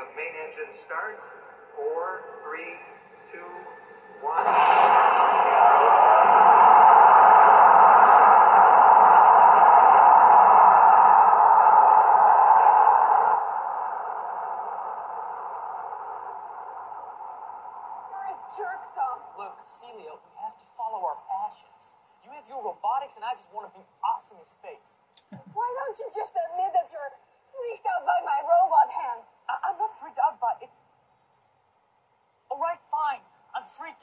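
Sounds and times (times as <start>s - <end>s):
rocket engines roaring: 1.0s - 18.7s.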